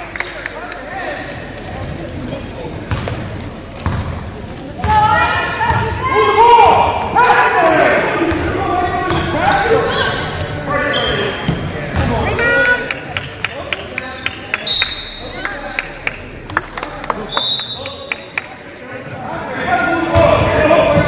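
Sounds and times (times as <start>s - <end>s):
loud voices calling out: 0.7s - 13.2s.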